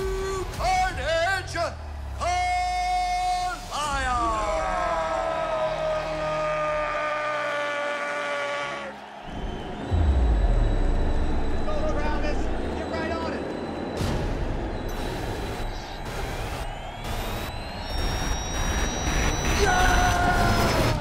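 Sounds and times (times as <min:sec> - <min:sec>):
noisy arena background: 0:00.0 - 0:21.0
deep boom and rumble: 0:09.3 - 0:16.7.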